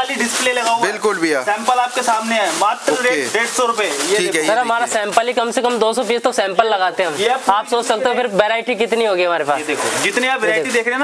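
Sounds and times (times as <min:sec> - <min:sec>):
men talking: 0:00.0 - 0:05.2, 0:09.6 - 0:11.0
plastic packets crinkling: 0:00.0 - 0:11.0.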